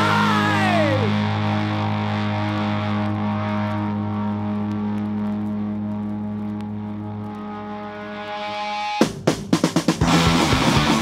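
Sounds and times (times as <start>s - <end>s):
distorted electric guitar drone: 0.0s - 9.3s, 9.9s - 11.0s.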